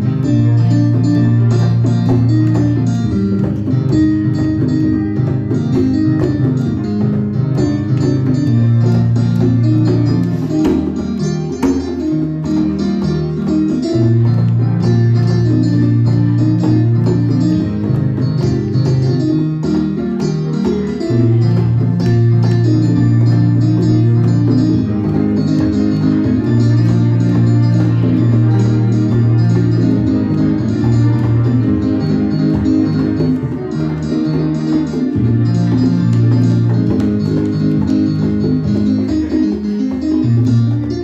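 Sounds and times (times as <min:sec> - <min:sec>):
congas tapping: 0:00.0 - 0:41.0
keyboard chords over bass notes: 0:00.0 - 0:41.0.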